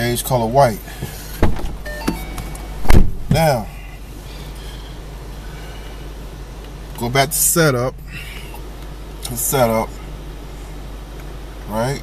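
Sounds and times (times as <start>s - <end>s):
knocks inside car cabin: 1.4s - 2.2s, 2.8s - 3.4s.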